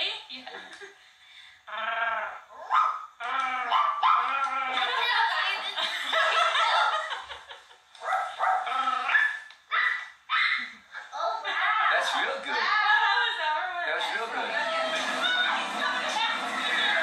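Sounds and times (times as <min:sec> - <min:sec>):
women laughing: 0:04.6 - 0:07.9, 0:14.6 - 0:17.0.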